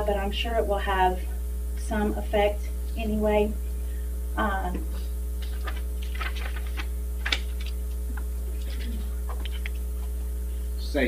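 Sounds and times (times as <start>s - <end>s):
electrical mains hum: 0.0s - 11.0s
faint clicks and rustles: 4.8s - 10.3s.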